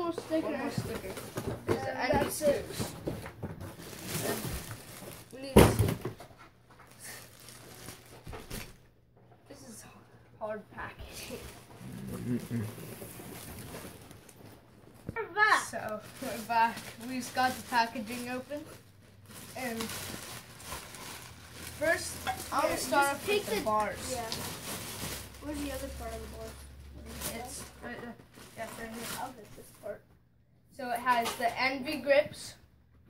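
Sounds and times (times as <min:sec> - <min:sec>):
plastic wrap crinkling: 0:02.8 - 0:05.6, 0:06.7 - 0:08.8, 0:11.2 - 0:29.8.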